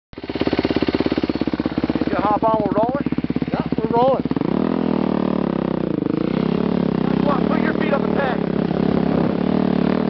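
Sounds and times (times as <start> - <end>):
dirt bike engine idling: 0.2 - 10.0.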